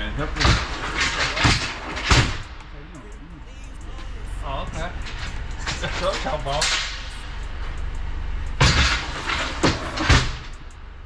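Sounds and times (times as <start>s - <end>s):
metal pipes clanking: 0.0s - 2.6s, 4.6s - 7.8s, 8.4s - 10.8s
metal pipes sliding: 8.6s - 10.6s.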